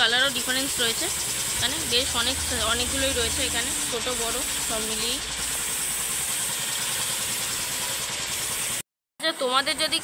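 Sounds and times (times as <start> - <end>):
low engine-like rumble: 1.2 - 7.6.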